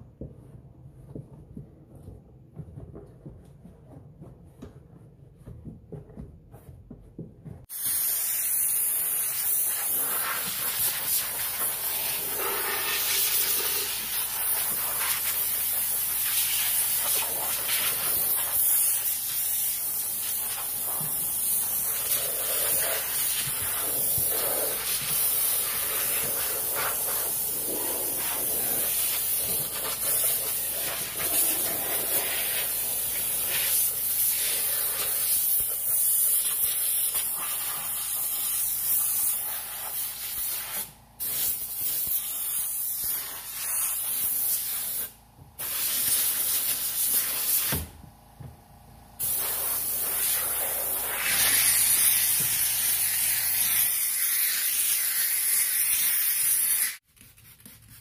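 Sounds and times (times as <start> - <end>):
steam hissing from nozzle: 7.7 - 47.8, 49.2 - 57.0.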